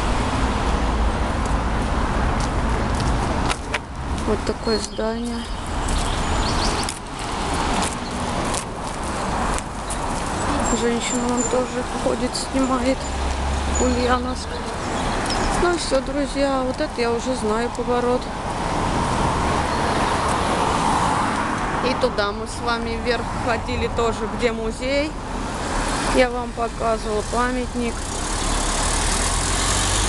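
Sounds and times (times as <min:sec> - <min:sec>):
car driving along road: 0:00.0 - 0:30.0.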